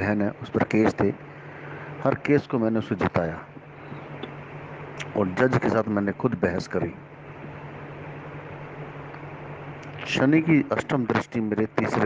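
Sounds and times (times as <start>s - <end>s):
background hiss: 0.0s - 12.0s
low constant hum: 0.0s - 12.0s.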